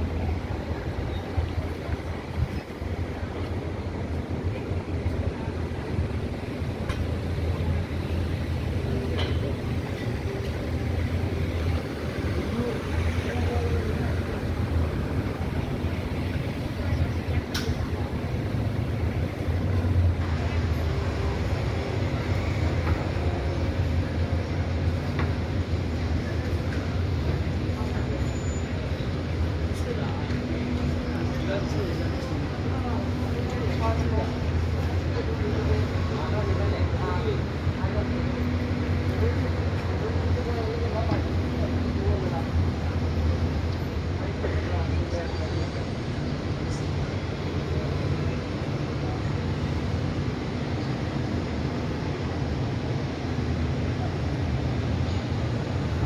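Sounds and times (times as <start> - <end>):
faint voices of passers-by: 0.0 - 56.0
road traffic rumble: 0.0 - 56.0.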